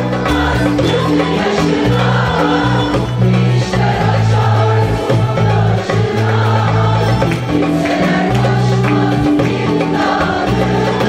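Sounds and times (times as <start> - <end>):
choir singing: 0.0 - 11.0
instrumental accompaniment: 0.0 - 11.0
steady held bass line: 0.0 - 11.0.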